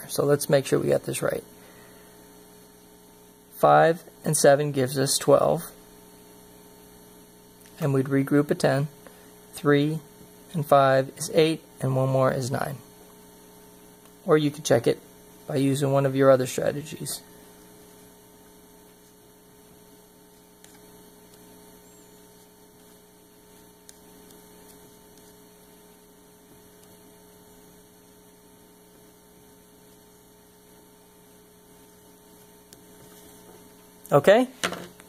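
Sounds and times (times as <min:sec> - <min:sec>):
faint mains hum: 0:00.0 - 0:35.0.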